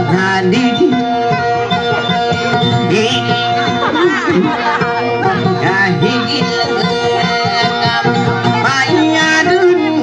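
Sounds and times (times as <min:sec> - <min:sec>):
plucked guitar music: 0:00.0 - 0:10.0.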